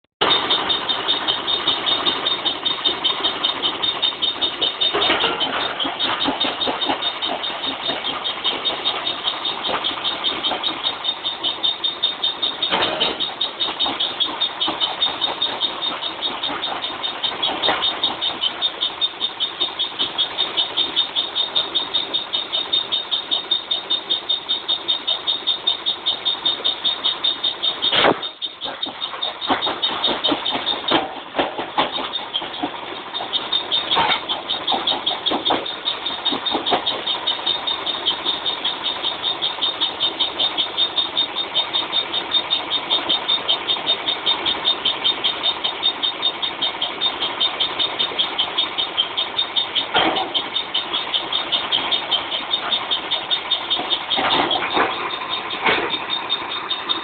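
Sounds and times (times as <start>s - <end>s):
brick crusher machine grinding: 0.2s - 57.0s
sharp knocks: 27.6s - 38.6s.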